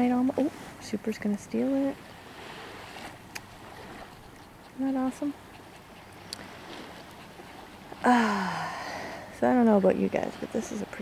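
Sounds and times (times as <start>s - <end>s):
wind: 0.0s - 11.0s
surf washing onto sandy shore: 1.6s - 4.1s.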